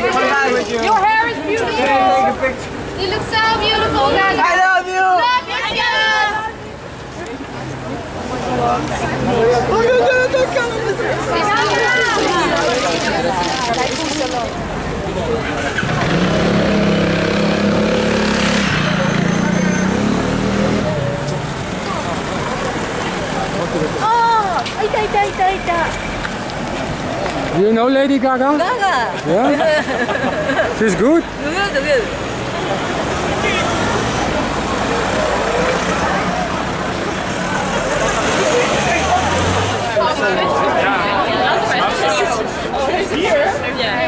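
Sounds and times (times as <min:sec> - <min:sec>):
crowd chatter and shouts: 0:00.0 - 0:44.0
street noise: 0:00.0 - 0:44.0.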